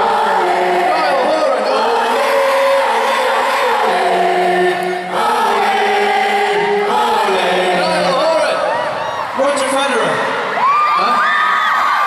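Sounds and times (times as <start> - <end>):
crowd screaming and cheering: 0.0 - 12.0.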